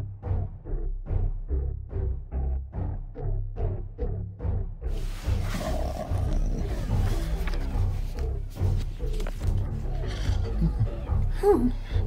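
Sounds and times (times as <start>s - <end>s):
music with low pulsing beat: 0.0s - 12.0s
creature growling roar: 5.4s - 7.3s.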